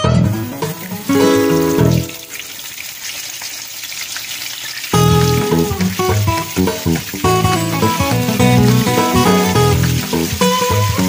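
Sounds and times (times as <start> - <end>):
guitar music: 0.0 - 2.3, 5.0 - 11.0
fish sizzling in oil: 0.3 - 11.0.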